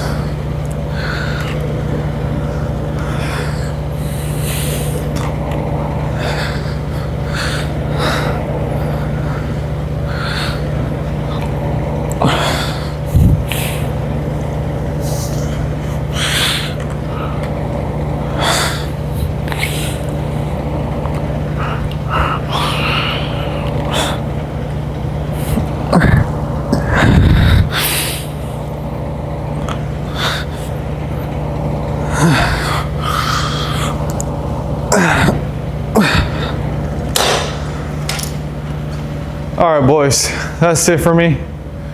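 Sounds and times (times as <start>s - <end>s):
steady low hum: 0.0s - 41.9s.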